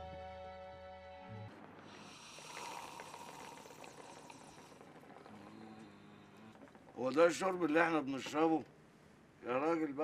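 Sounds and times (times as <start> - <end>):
hookah water bubbling: 1.8 - 8.6.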